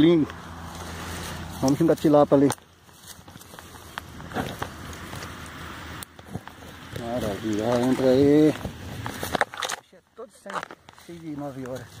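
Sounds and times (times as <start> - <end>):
dry stems crackling: 0.0 - 12.0
footsteps through dry grass: 0.2 - 12.0.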